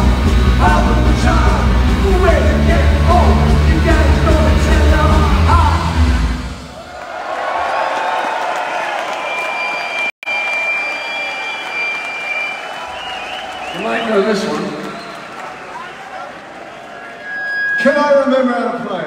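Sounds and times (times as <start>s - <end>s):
audience applause and cheering: 0.0s - 17.7s.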